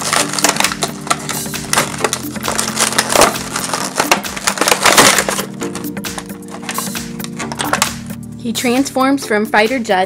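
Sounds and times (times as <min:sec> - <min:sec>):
plastic packaging crackling: 0:00.0 - 0:08.2.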